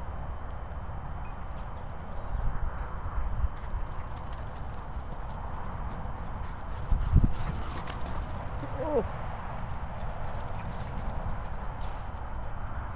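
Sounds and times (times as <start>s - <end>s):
wind rumble on microphone: 0.0s - 12.9s
dog's paws pounding turf: 1.5s - 12.9s.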